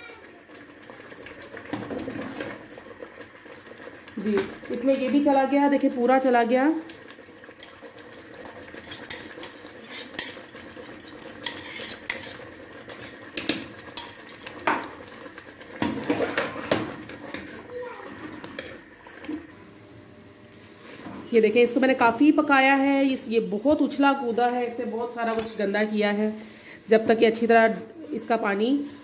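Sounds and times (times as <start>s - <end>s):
spoon scraping metal pot: 8.3s - 14.6s.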